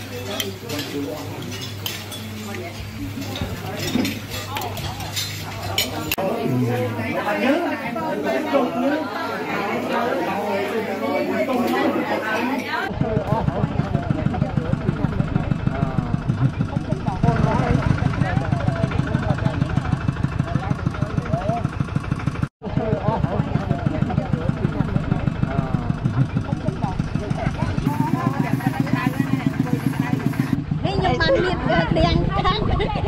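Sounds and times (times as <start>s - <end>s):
people's voices: 0.0s - 21.8s, 22.6s - 33.0s
diesel engine chugging: 12.9s - 32.2s.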